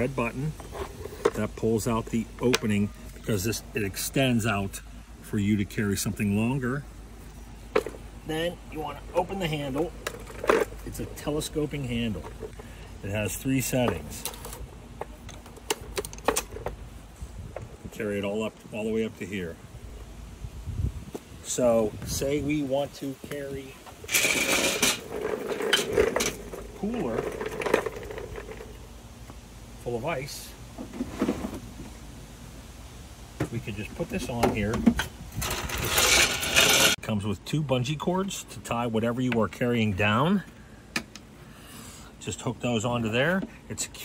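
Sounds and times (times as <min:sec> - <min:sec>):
plastic cooler scraping: 0:00.0 - 0:02.1, 0:24.0 - 0:28.9, 0:30.8 - 0:32.0, 0:34.0 - 0:37.0
telescoping handle clicks and rattles: 0:13.9 - 0:16.8.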